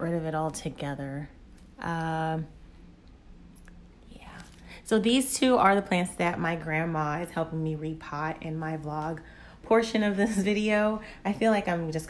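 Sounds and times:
woman speaking: 0.0 - 2.6, 4.1 - 12.0.

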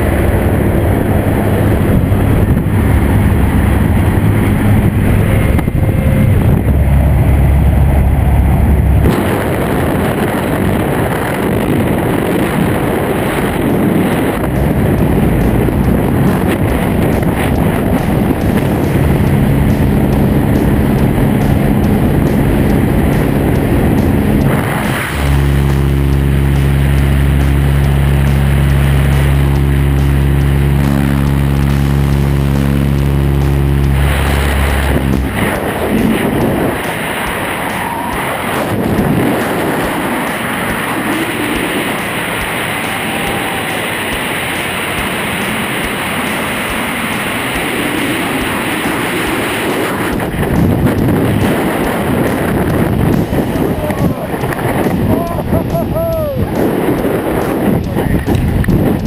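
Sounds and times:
light aircraft engine droning: 0.0 - 59.0
wind rushing: 0.0 - 59.0.

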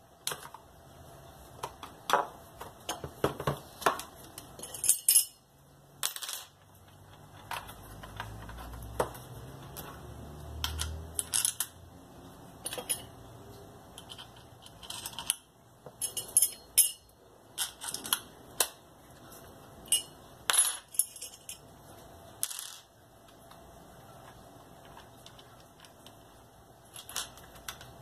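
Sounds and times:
metal parts clicking and clinking: 1.6 - 11.8, 12.6 - 13.2, 13.9 - 19.2, 19.8 - 21.7, 24.2 - 28.0.

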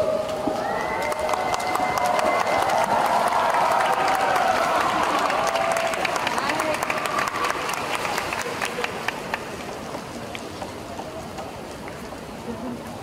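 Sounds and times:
crowd cheering and whooping: 0.0 - 8.4
people clapping: 0.0 - 10.6.

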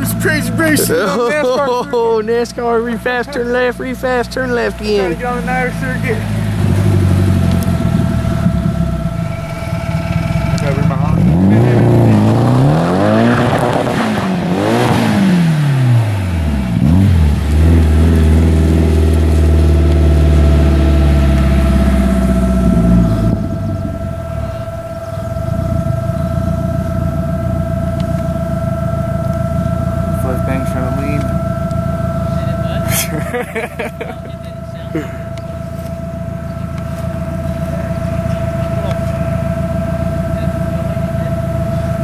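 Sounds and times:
car engine revving hard: 4.8 - 42.0.

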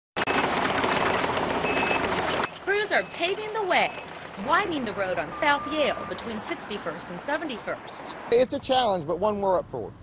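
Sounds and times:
rapid mechanical clatter: 0.2 - 4.6
excavator engine: 0.2 - 7.9.

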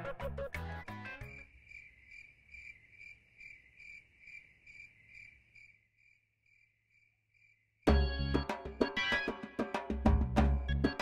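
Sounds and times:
cricket chirping: 1.2 - 7.9.

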